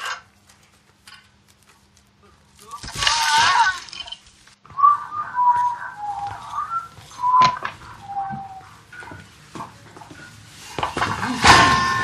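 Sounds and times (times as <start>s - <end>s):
person whistling a tune: 4.7s - 8.7s.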